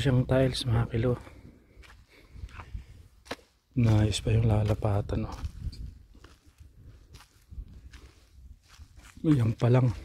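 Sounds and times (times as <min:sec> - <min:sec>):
faint footsteps: 0:01.1 - 0:10.0.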